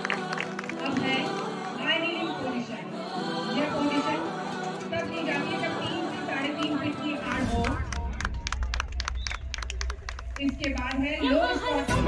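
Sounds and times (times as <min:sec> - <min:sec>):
low rumble: 0:07.4 - 0:12.0.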